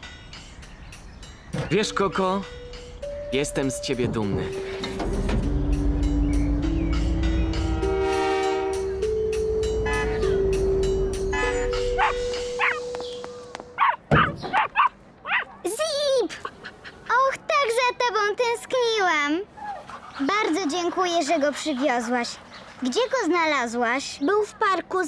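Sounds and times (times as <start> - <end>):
background music with slow melody: 0.0 - 14.1
cartoon puppy yapping and whining: 13.8 - 15.6.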